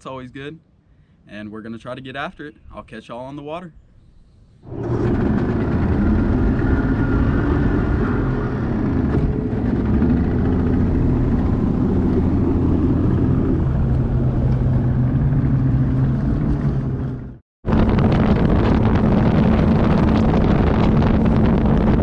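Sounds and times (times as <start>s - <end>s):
outboard motor running: 4.6s - 22.0s
wind rushing over microphone: 4.7s - 22.0s.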